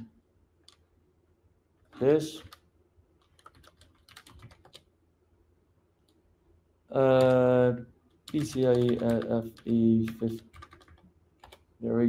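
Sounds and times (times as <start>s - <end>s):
computer keyboard typing: 2.3s - 2.6s, 3.2s - 4.9s, 7.0s - 7.5s, 8.2s - 11.7s.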